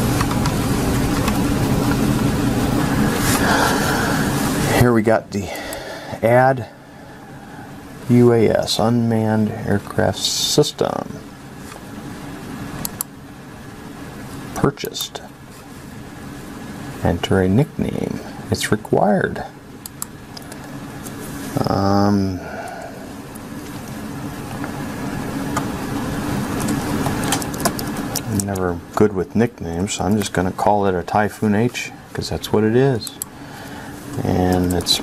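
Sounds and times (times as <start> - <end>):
low room hum: 0.0 - 35.0
computer mouse clicks: 19.8 - 21.2
keyboard keys clicking: 26.6 - 28.6.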